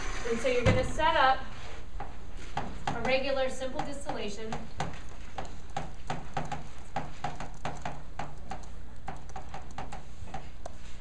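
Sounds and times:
chalk tapping and scraping on blackboard: 2.0 - 11.0.

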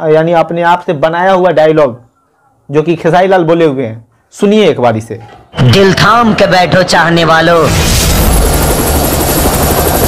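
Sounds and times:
helicopter rotor beating: 5.6 - 10.0
turbine whine: 7.7 - 10.0.

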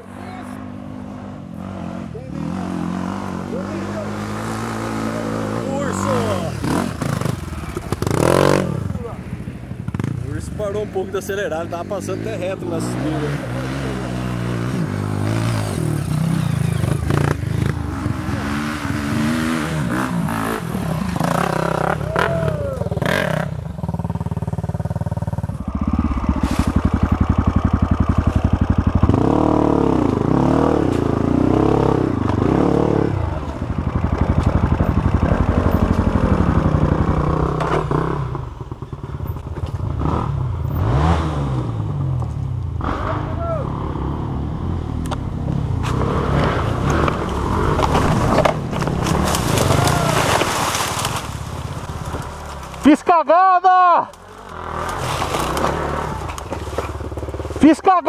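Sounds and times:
dirt bike engine revving: 0.0 - 53.0, 54.2 - 58.0.

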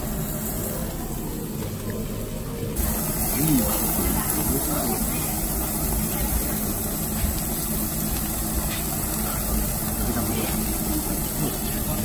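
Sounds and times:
gas grill and exhaust fan rumble: 0.0 - 12.0
meat cooking on grill: 0.0 - 12.0.

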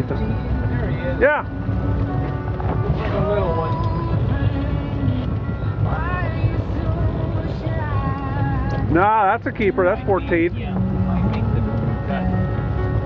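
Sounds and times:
boat engine idling: 0.0 - 13.0
faint voices talking: 0.0 - 13.0.

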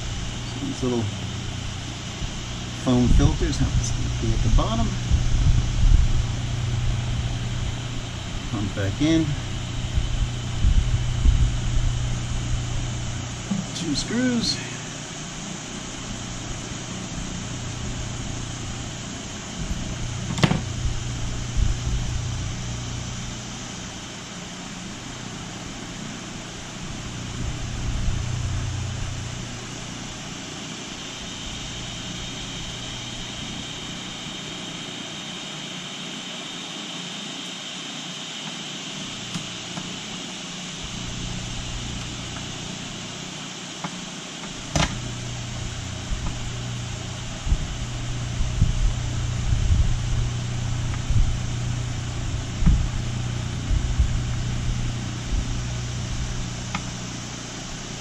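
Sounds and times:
low mechanical hum: 0.0 - 58.0.

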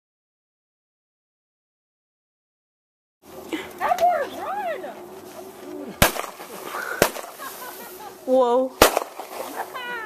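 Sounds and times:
fireworks bangs: 6.0 - 8.0, 8.8 - 10.0.

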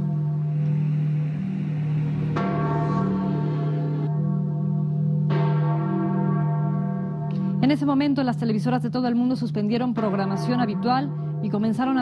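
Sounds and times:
steady low drone: 0.0 - 5.6
church bell tolling: 0.0 - 12.0.

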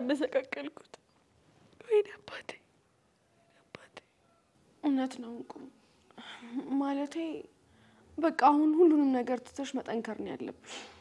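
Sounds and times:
woman speaking: 4.8 - 7.5.

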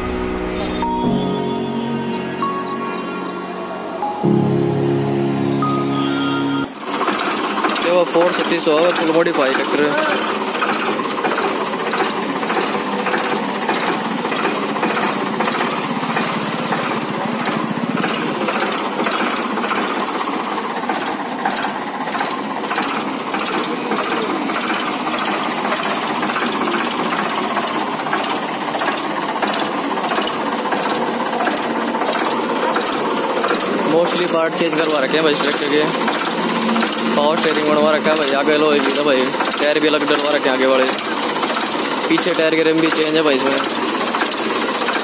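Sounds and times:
tractor engine idling: 6.5 - 45.0.

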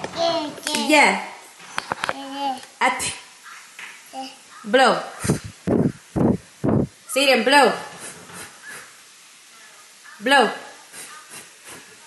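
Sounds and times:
toddler's breathy puffs of air: 5.2 - 5.6.

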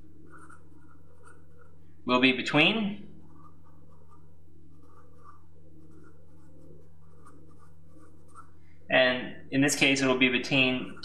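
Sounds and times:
marker scratching on paper: 0.0 - 1.9, 3.2 - 8.7
steady low hum: 0.0 - 11.0
man talking: 2.1 - 3.1, 8.9 - 11.0.

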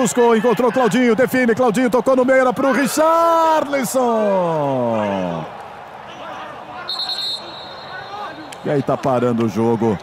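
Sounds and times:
faint shouts of players: 2.3 - 8.8
referee's whistle blast: 6.9 - 8.5.

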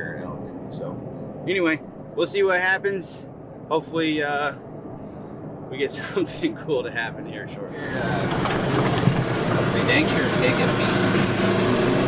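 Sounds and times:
vehicle engine rumble from inside cab: 7.5 - 12.0.

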